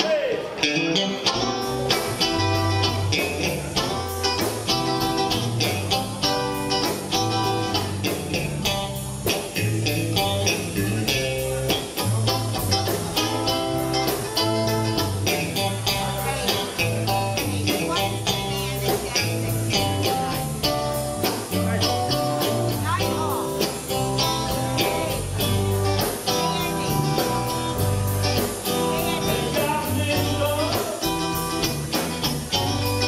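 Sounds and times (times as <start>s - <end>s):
electric guitar: 0.0s - 33.0s
electric bass: 0.6s - 33.0s
keyboard: 1.0s - 33.0s
drum beat: 1.3s - 33.0s.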